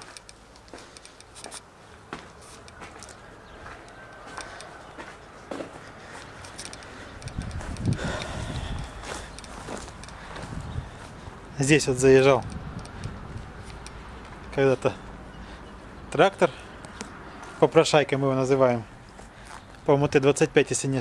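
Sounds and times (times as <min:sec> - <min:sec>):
footsteps on rubble and gravel: 0:00.0 - 0:11.3
clicks and scuffs: 0:00.0 - 0:11.4.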